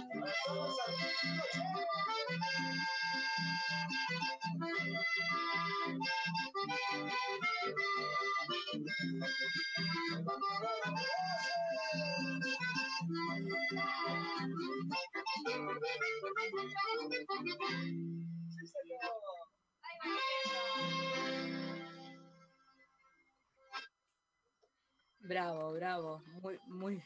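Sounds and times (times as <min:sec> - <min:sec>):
button accordion folk tune: 0:00.0 - 0:19.2, 0:19.9 - 0:22.7, 0:23.7 - 0:24.0.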